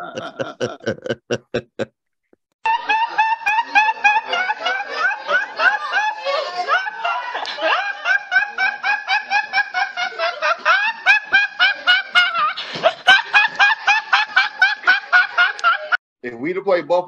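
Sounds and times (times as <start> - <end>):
boy laughing uncontrollably: 0.0 - 1.9.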